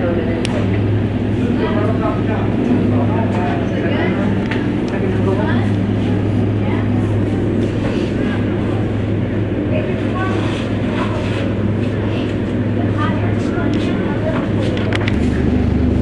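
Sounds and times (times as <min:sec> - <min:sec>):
constant low hum: 0:00.0 - 0:16.0
fans rushing air: 0:00.0 - 0:16.0.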